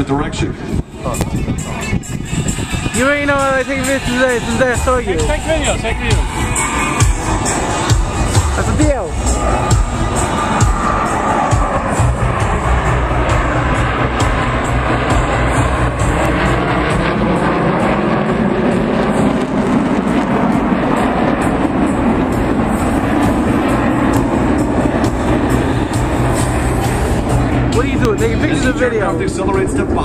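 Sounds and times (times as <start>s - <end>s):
jets flying over: 0.0s - 30.0s
music: 0.0s - 30.0s.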